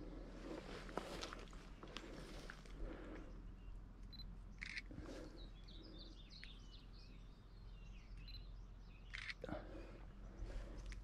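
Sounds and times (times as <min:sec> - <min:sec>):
small bird chirping: 0:03.5 - 0:09.4.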